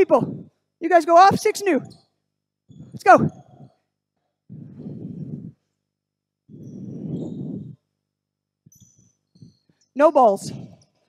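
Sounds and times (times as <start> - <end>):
close breaths: 2.8 - 8.7.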